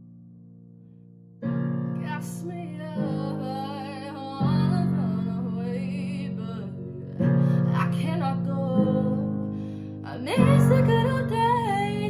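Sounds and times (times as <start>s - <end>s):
woman singing with vibrato: 2.0s - 12.0s.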